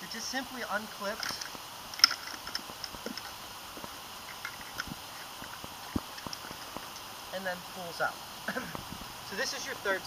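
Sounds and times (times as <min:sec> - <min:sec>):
steady outdoor hiss: 0:00.0 - 0:10.0.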